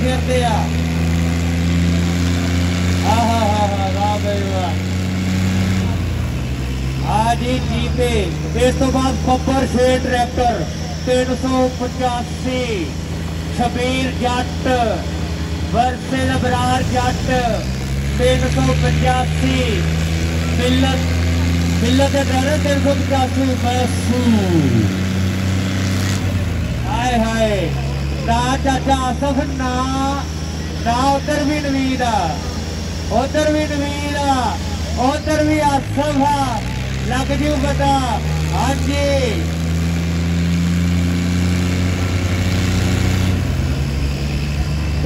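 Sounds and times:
tractor diesel engines under load: 0.0 - 45.0.

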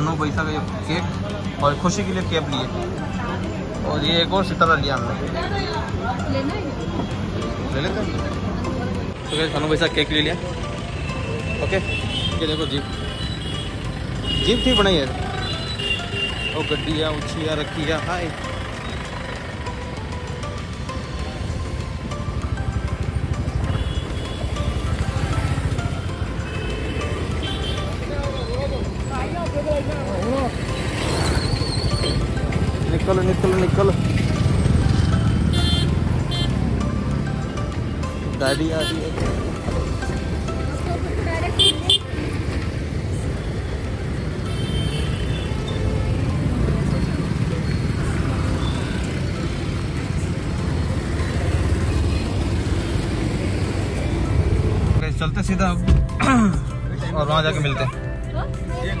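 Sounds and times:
background music: 0.0 - 59.0
street traffic rumble: 0.0 - 59.0
car and motorcycle engines passing: 13.5 - 28.2, 28.9 - 56.2.

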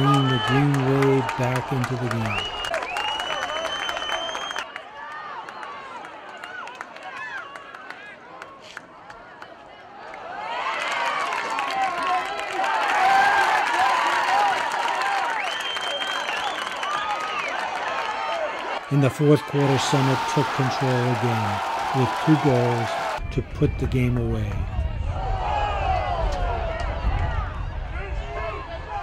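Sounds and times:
referee's whistle blast: 0.0 - 4.6
crowd shouting and cheering: 0.0 - 29.0.

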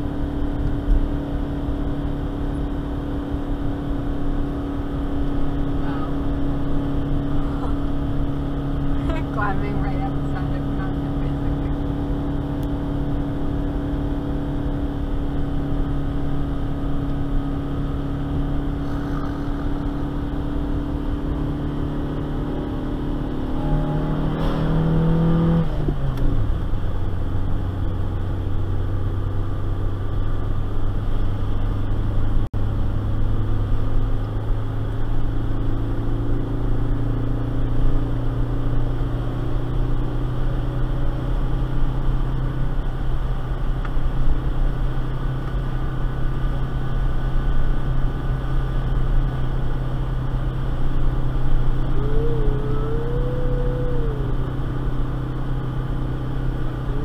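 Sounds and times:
car engine drone from cabin: 0.0 - 57.0
road noise: 0.0 - 57.0.

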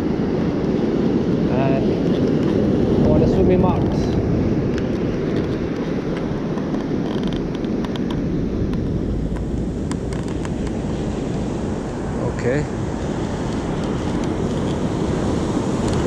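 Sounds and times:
sea surf: 0.0 - 16.0
wind noise on microphone: 0.0 - 16.0.

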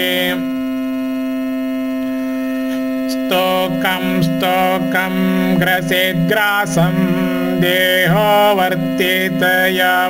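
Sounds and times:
steady drone of held pitches: 0.0 - 10.0.

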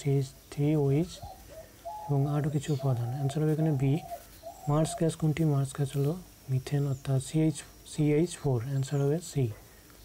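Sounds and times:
man reading aloud: 0.0 - 9.7.

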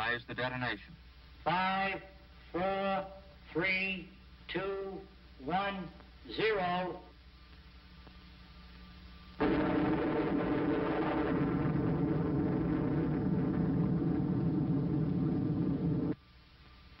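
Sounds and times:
nuclear blast deep bass roar: 9.4 - 16.2.

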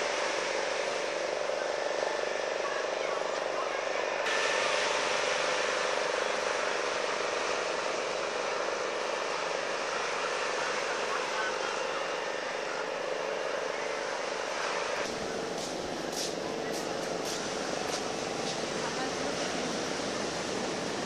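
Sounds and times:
steady hum: 0.0 - 21.0
people chattering: 15.2 - 21.0.

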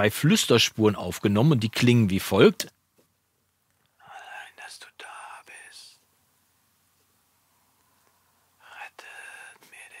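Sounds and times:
man whispering: 4.0 - 6.1, 8.6 - 10.0.

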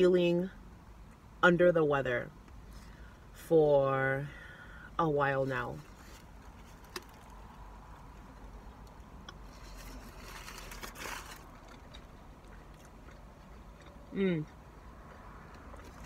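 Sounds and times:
low car cabin hum: 0.0 - 16.0
quiet chewing: 8.0 - 16.0
foil wrapper crinkling: 9.5 - 11.8.

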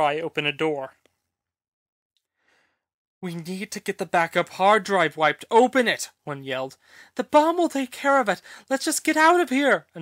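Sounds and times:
faint breath: 2.3 - 2.9, 6.8 - 7.2, 8.4 - 8.7.

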